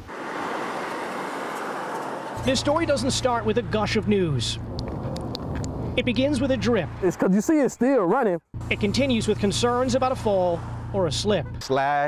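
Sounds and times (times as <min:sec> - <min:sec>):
car driving past: 0:00.0 - 0:07.2, 0:08.6 - 0:11.3
street traffic noise: 0:00.0 - 0:12.0.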